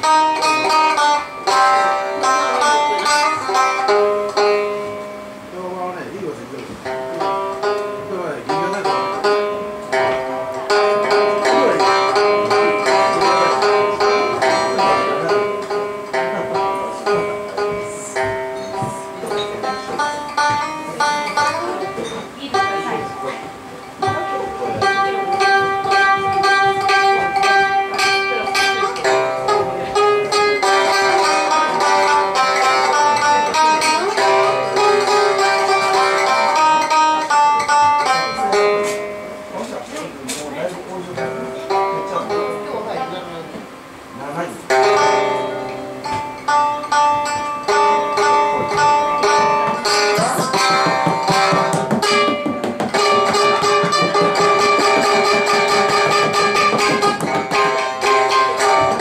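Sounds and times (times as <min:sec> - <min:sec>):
plucked string instrument: 0:00.0 - 0:59.0
held drone note: 0:06.8 - 0:39.9, 0:44.7 - 0:59.0.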